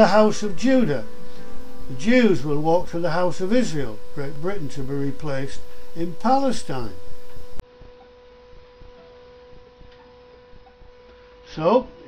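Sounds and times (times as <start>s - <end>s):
light hiss: 0.0s - 11.8s
steady high hum: 0.0s - 12.0s.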